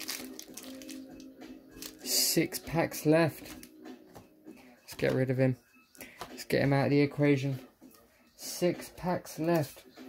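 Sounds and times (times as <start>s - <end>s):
foil packs crinkling: 0.0s - 1.2s
quiet background music: 0.0s - 10.0s.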